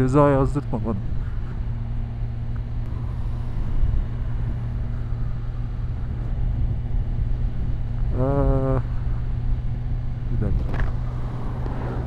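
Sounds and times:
motorcycle engine cruising: 0.0s - 12.0s
road noise: 0.0s - 12.0s.

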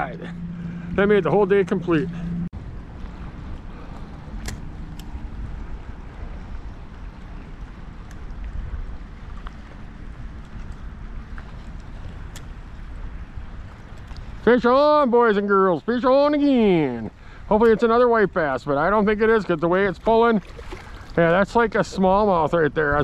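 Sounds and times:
river water lapping at shore: 0.0s - 23.0s
wind rumbling on microphone: 0.0s - 23.0s.

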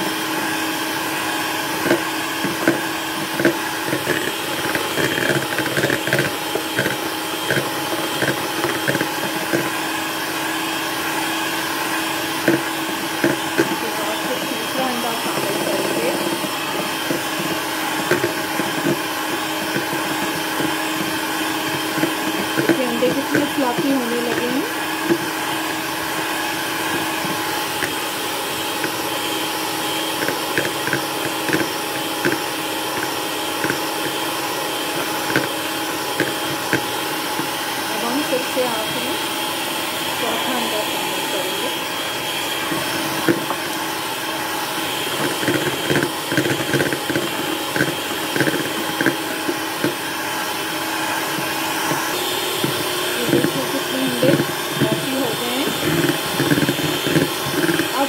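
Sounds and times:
electric hand mixer whining: 0.0s - 58.0s.

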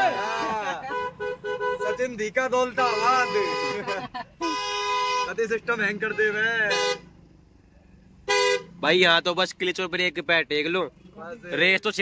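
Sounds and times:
car horn honking: 0.0s - 7.3s, 8.1s - 8.9s.

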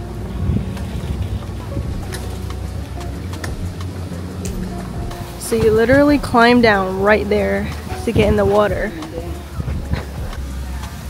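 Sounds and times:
faint music: 0.0s - 11.0s
wind buffeting microphone: 0.0s - 11.0s.

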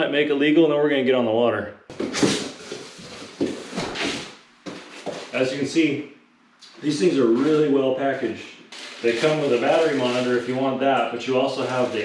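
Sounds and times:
packaging rustling and scraping: 7.3s - 10.6s, 11.6s - 12.0s.

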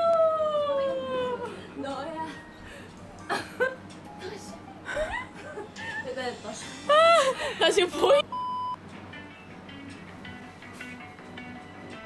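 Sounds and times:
women shouting and exclaiming: 0.0s - 2.3s
electronic censor bleep: 8.3s - 8.8s.

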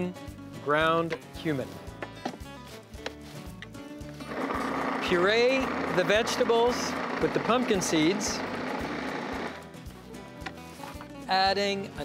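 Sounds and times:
background music: 0.0s - 12.0s
food processor motor running: 4.2s - 9.6s.

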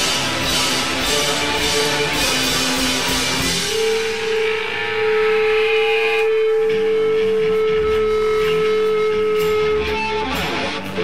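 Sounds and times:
bass guitar: 0.0s - 11.0s
drums: 0.0s - 11.0s
electric guitars: 0.0s - 11.0s
long held guitar note: 3.5s - 11.0s.

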